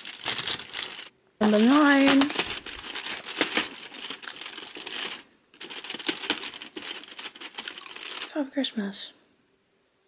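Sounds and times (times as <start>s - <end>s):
foil wrapper crinkling: 0.0s - 8.3s.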